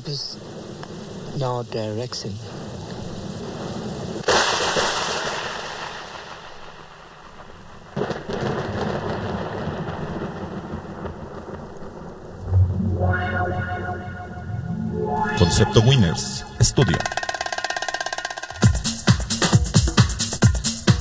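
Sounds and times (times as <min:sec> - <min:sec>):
rain hissing: 0:00.0 - 0:13.1
thunderclap rumbling: 0:00.0 - 0:14.5
low boom: 0:12.4 - 0:16.6.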